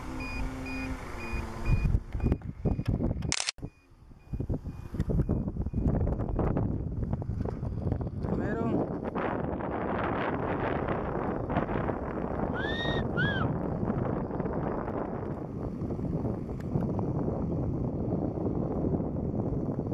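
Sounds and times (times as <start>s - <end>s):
gusty wind buffeting microphone: 0.0s - 3.4s, 4.0s - 19.9s
short rising and falling whistles: 12.5s - 13.5s.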